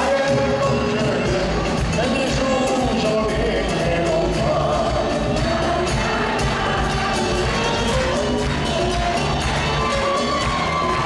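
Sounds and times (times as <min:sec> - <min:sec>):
live band playing: 0:00.0 - 0:11.0
voices singing a held melody: 0:04.0 - 0:09.4.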